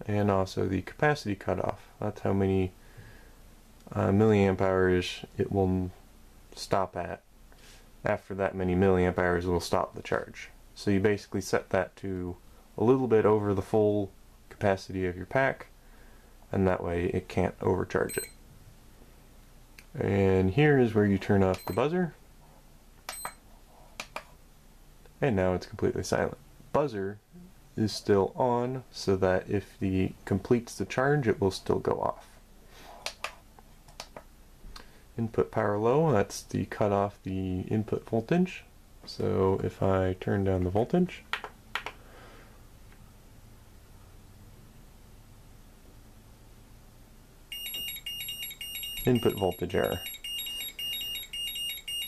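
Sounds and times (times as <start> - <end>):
high electronic key beep: 18.1 - 18.4, 21.6 - 21.8, 23.1 - 23.4, 47.5 - 52.0.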